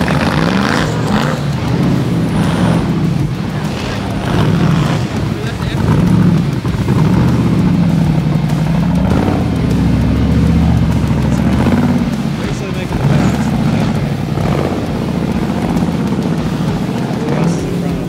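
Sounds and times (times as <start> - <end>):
buggy engine revving: 0.0 - 18.0.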